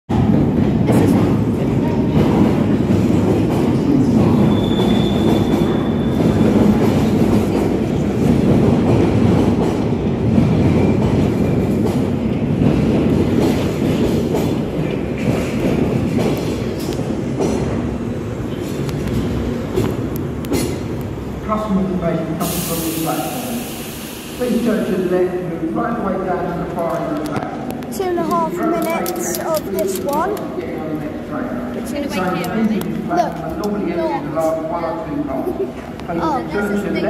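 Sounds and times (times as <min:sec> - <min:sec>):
train wheels rumbling on rails: 0:00.1 - 0:37.0
high wheel squeal: 0:04.5 - 0:06.2.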